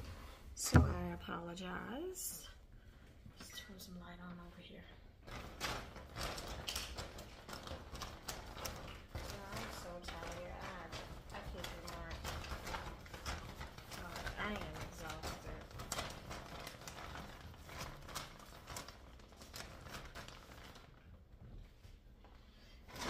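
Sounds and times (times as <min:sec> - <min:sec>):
packages and bags rustling: 0:05.2 - 0:22.0.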